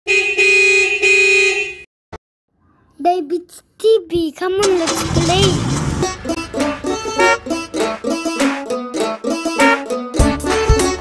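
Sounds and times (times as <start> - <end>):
car horn honking: 0.1 - 1.9, 6.0 - 8.3, 9.6 - 9.9.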